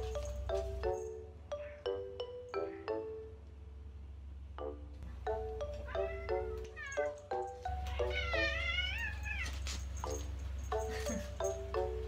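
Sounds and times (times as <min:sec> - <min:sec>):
cat meowing: 0:05.9 - 0:07.2, 0:07.8 - 0:09.7.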